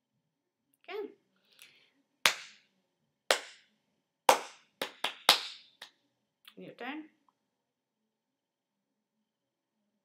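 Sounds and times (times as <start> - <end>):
hand claps: 2.3 - 2.6, 3.3 - 3.7, 4.3 - 5.9.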